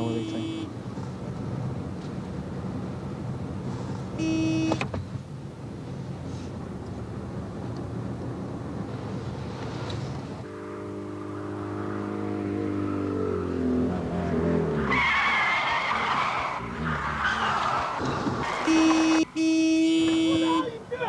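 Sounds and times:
steady road noise: 0.0s - 21.0s
vehicle engine revving: 9.0s - 20.3s
tyres screeching: 14.0s - 19.4s.

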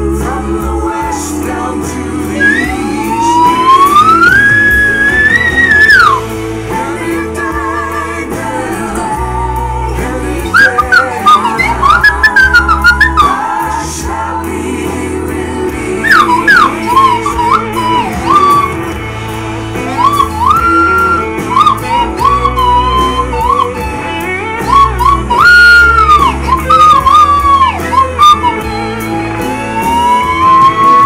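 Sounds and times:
backing music: 0.0s - 31.0s
slide whistle gliding: 2.4s - 6.4s, 10.5s - 13.6s, 16.0s - 19.0s, 19.9s - 31.0s.

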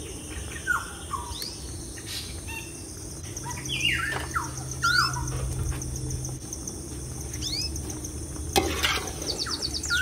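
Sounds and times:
birds chirping: 0.0s - 8.5s, 9.1s - 10.0s
steady low hum: 0.0s - 10.0s.

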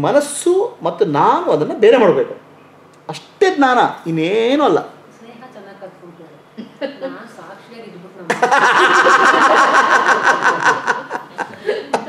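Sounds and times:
man laughing heartily: 8.3s - 12.0s.

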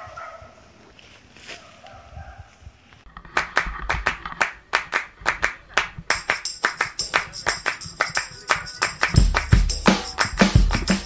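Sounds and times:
rhythmic hand claps: 3.2s - 11.0s.

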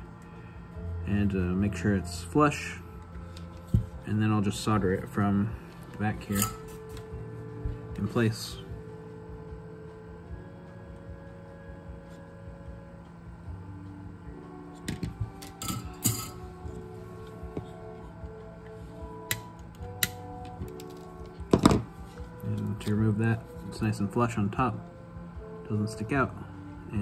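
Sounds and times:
soft background music: 0.0s - 27.0s
metal enclosure and tools clicking: 6.2s - 7.0s, 14.9s - 16.4s.

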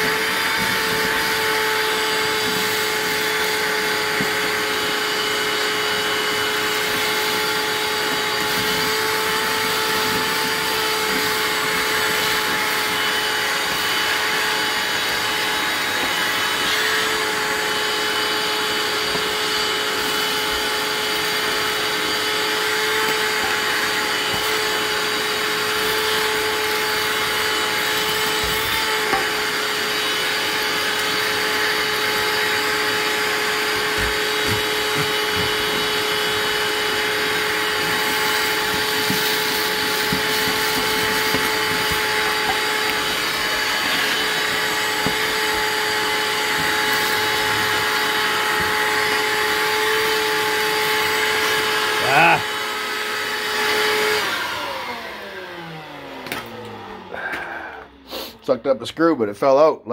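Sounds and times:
vacuum cleaner whining: 0.0s - 59.9s.

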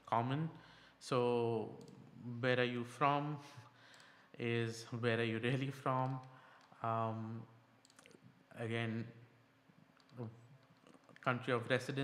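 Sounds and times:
computer mouse clicks: 10.0s - 11.3s.

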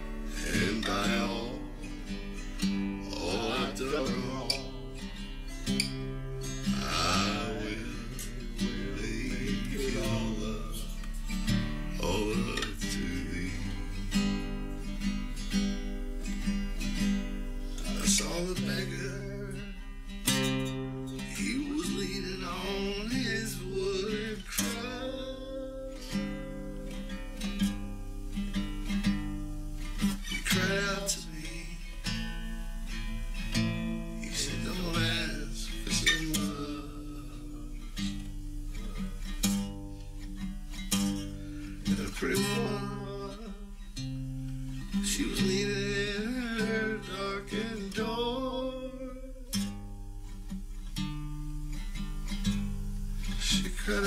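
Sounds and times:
acoustic guitar folk song: 0.0s - 54.0s
steady low hum: 0.0s - 54.0s.

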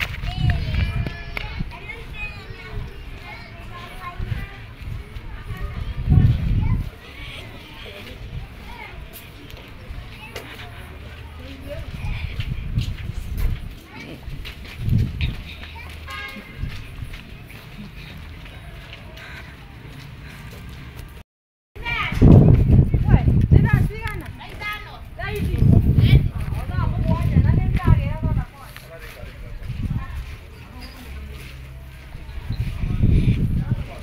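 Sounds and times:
distant voices of people and children: 0.0s - 21.0s, 21.8s - 34.0s
low microphone rumble: 4.1s - 6.9s, 25.1s - 28.5s
low thumps of footsteps: 11.7s - 19.1s.

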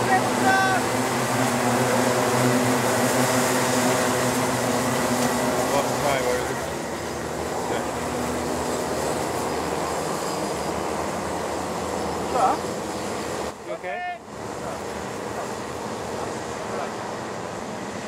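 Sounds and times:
kart engines racing: 0.0s - 18.0s.

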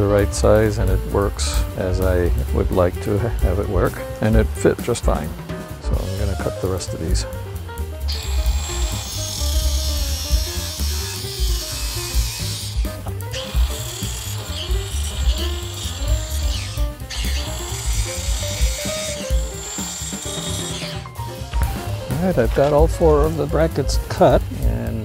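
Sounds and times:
background music: 0.0s - 25.0s
angle grinder cutting metal: 5.9s - 7.3s, 7.9s - 24.4s.

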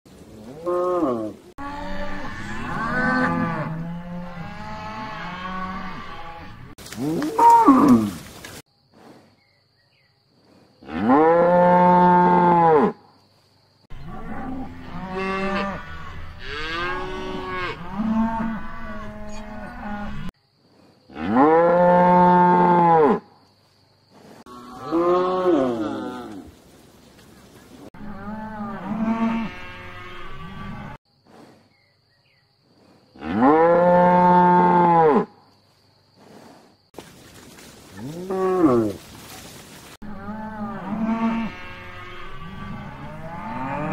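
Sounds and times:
cattle mooing: 0.5s - 8.1s, 14.0s - 20.3s, 40.0s - 43.9s.

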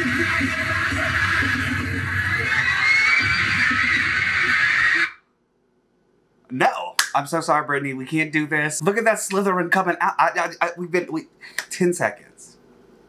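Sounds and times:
crowd screaming: 0.0s - 5.2s.

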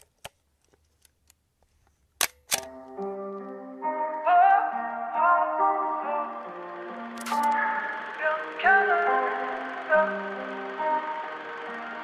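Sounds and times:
camera shutter clicks: 2.2s - 2.8s, 7.1s - 7.6s
music with held tones: 2.6s - 12.0s.

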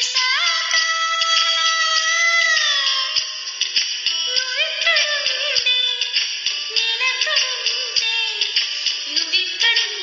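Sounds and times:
backing track with beat: 0.0s - 10.0s
person singing karaoke: 0.0s - 10.0s.

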